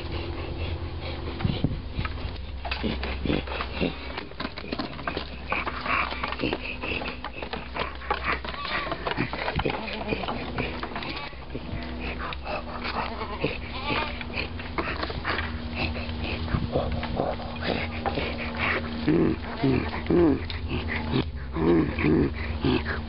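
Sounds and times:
steady low hum: 0.0s - 23.0s
goats bleating: 2.6s - 23.0s.

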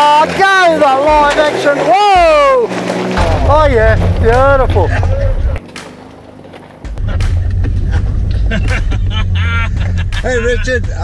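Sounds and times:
low rumble: 3.1s - 5.6s, 7.0s - 11.0s.

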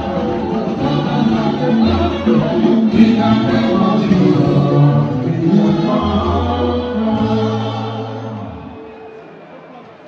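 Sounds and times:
group singing gospel in chorus: 0.0s - 8.8s.

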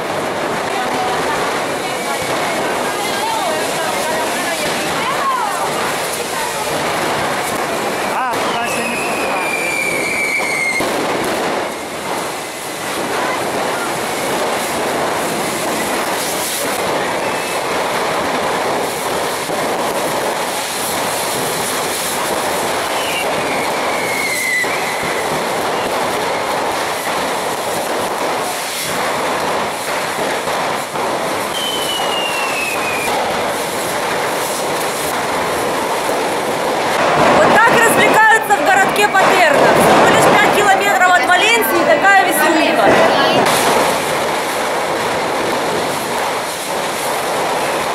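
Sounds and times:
rockets hissing and crackling: 0.0s - 47.9s
descending rocket whistles: 8.0s - 10.9s, 22.9s - 26.5s, 31.5s - 33.2s.

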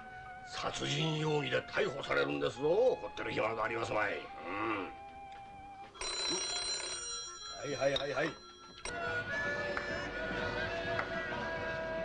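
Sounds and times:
faint background music: 0.0s - 12.0s
telephone bell ringing: 5.9s - 10.0s.

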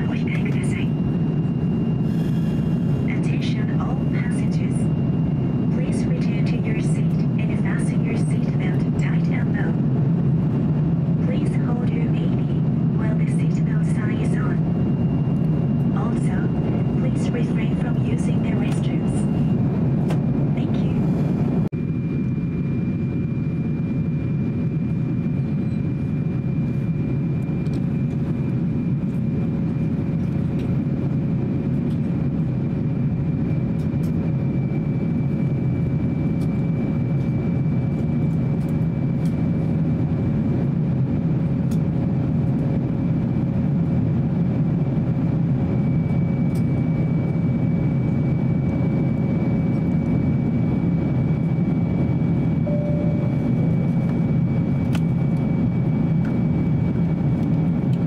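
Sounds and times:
airliner cabin rumble: 0.0s - 58.0s
faint high whine: 45.8s - 56.6s.

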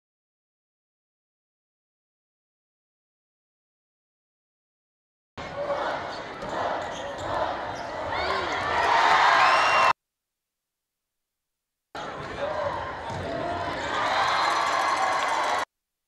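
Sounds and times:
crowd cheering: 5.6s - 10.0s, 12.0s - 15.7s.

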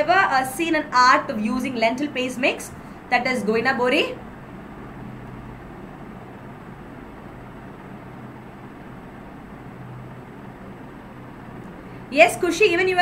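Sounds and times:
constant low hum: 0.0s - 13.0s.

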